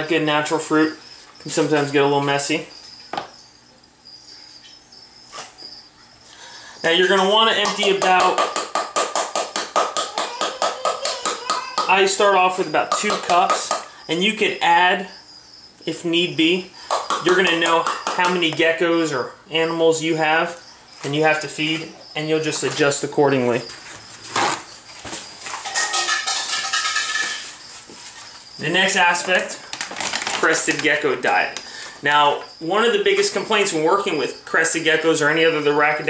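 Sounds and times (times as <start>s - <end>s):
foil pouch crinkling: 29.3s - 31.0s.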